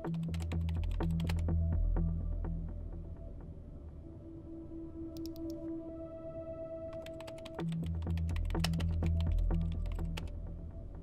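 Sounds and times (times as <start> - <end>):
computer keyboard typing: 5.2 - 5.5, 6.9 - 10.3.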